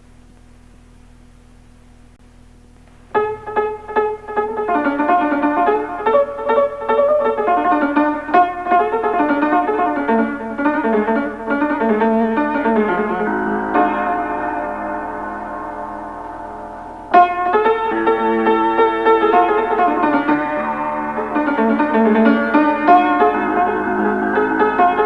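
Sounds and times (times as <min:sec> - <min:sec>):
solo piano melody: 0:02.8 - 0:25.0.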